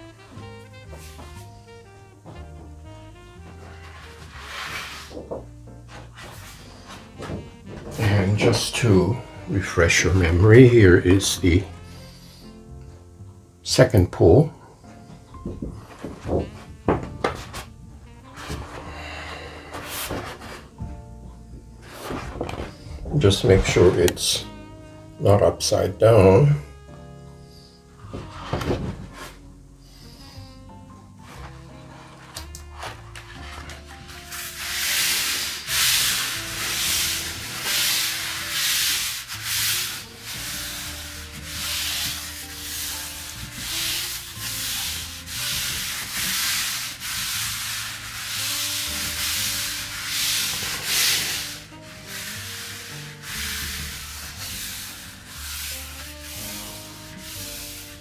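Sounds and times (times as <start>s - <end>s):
hands rubbing paper: 3.4s - 8.9s, 18.3s - 20.7s, 31.2s - 58.0s.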